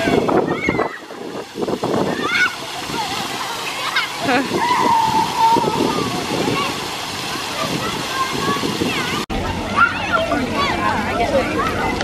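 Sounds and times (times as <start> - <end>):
children calling: 0.0 - 12.0
fountain jets splashing: 0.0 - 12.0.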